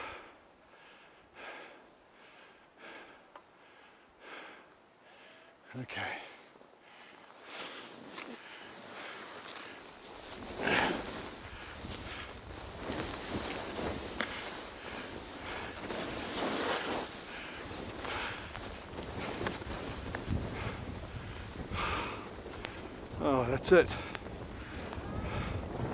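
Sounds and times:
skis scraping over snow: 7.4 - 25.9.

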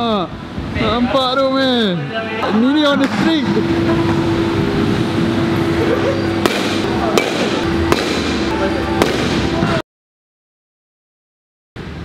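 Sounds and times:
steady hum: 0.0 - 9.8
sharp cracks of balls struck: 6.4 - 9.5.

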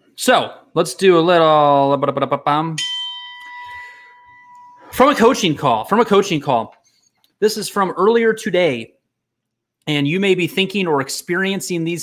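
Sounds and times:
bell-like chime: 2.8 - 5.6.

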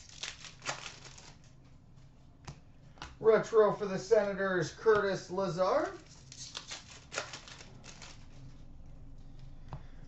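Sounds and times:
trading cards flipped by hand: 0.0 - 3.2, 5.8 - 8.4.

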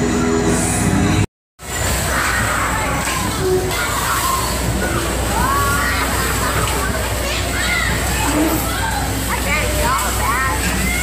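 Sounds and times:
voices: 2.0 - 11.0.

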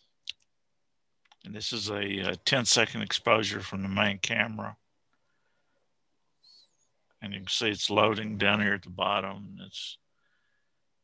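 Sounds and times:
faint high chirp: 6.4 - 6.9.

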